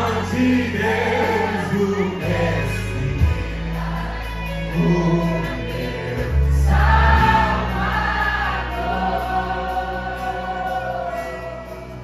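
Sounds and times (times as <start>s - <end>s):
band with bass and keyboard: 0.0s - 12.0s
vocal group singing: 0.0s - 12.0s.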